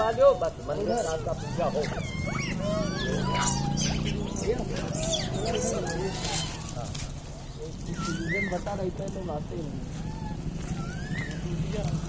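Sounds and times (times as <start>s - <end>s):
monkeys calling: 0.0s - 12.0s
high chirps: 1.4s - 5.9s.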